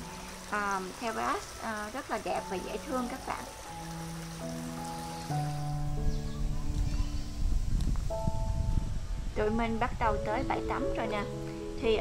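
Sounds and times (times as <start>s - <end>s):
soft sustained background music: 0.0s - 12.0s.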